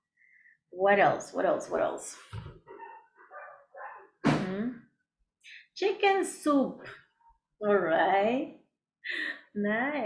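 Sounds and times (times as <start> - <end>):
dog barking: 2.7 - 4.2.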